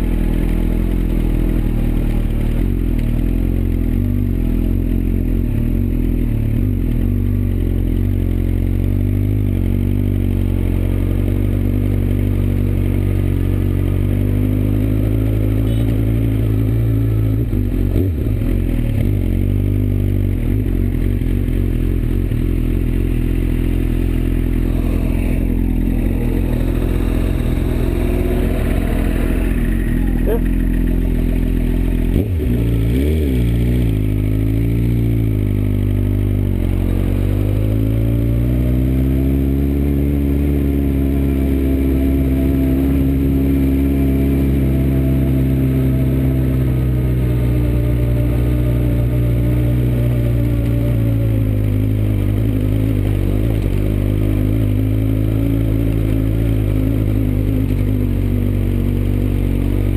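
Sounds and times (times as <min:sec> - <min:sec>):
motorcycle engine at low revs: 0:00.0 - 0:59.9.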